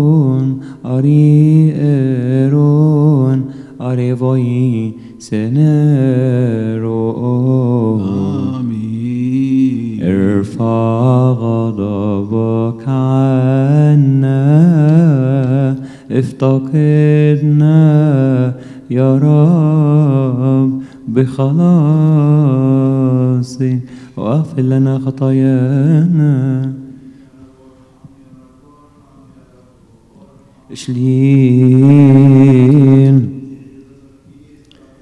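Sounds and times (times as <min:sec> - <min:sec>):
man chanting: 0:00.0 - 0:35.0.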